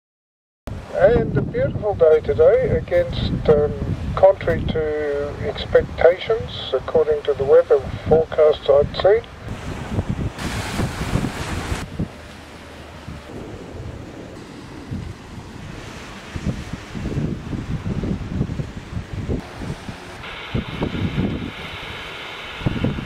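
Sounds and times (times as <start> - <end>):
wind buffeting microphone: 0.7 - 23.0
waves breaking on beach: 5.0 - 23.0
steady high hiss: 19.4 - 23.0.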